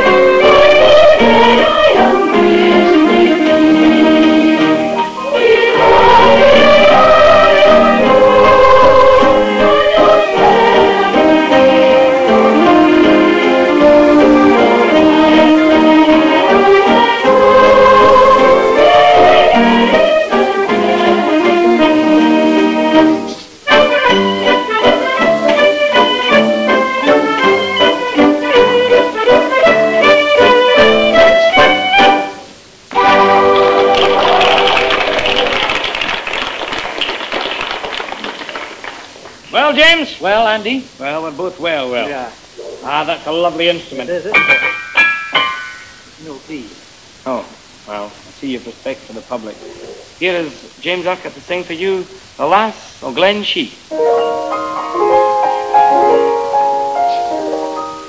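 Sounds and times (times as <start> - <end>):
fiddle tune with accompaniment: 0.0 - 34.2
applause patter: 33.4 - 39.5.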